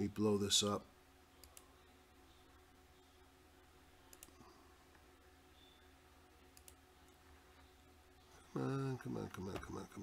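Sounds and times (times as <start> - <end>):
faint electrical hum: 0.0 - 10.0
computer mouse clicks: 1.4 - 1.7, 4.1 - 4.4, 6.5 - 7.2.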